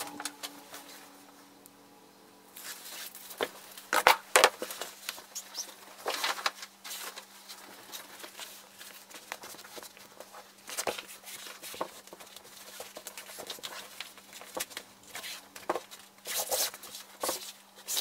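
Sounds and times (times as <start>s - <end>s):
fabric rustling and crinkling: 2.5s - 17.6s.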